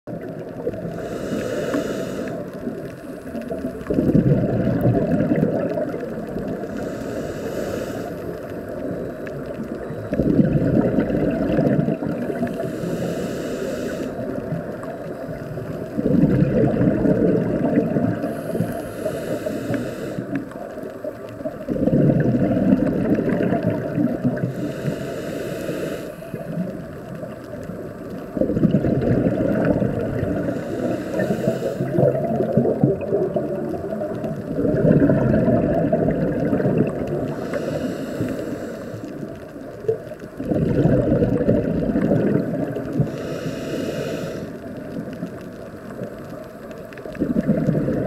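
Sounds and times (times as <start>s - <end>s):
exhaled bubbles underwater: 0.1s - 25.1s, 26.2s - 48.0s
regulator inhalation hiss: 0.8s - 3.4s, 6.6s - 10.2s, 12.4s - 15.9s, 18.2s - 20.8s, 24.4s - 26.6s, 30.4s - 32.2s, 37.2s - 39.4s, 43.0s - 44.7s.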